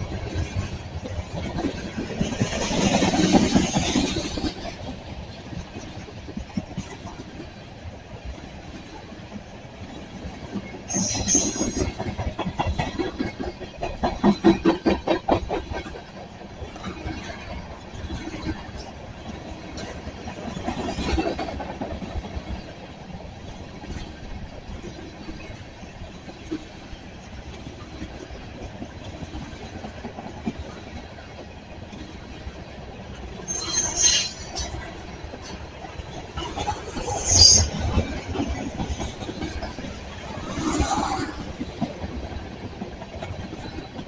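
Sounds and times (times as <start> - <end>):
train wheels rumbling on rails: 0.0 - 44.0
high-pitched wheel screeches: 33.4 - 34.8, 36.4 - 37.9.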